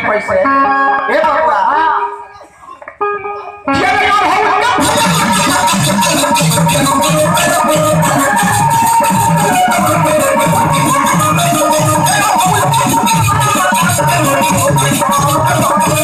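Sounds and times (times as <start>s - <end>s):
melody instrument: 3.4s - 16.0s
hand drums beating: 4.7s - 16.0s
rattling percussion: 4.7s - 16.0s.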